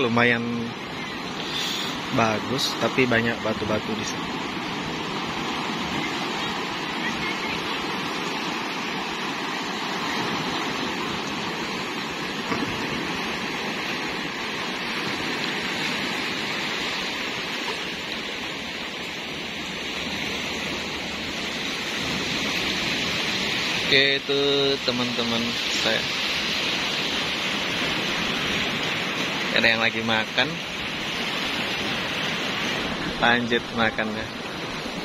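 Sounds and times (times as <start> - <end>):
sea waves washing over rocks: 0.0 - 35.0.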